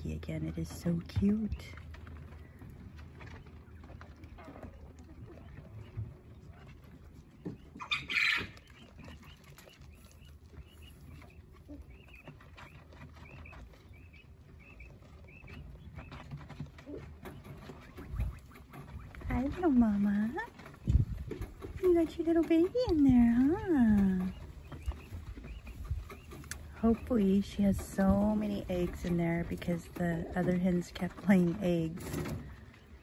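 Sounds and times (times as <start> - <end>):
low steady hum: 0.0 - 33.0
quail calling: 7.4 - 16.2, 16.8 - 19.4.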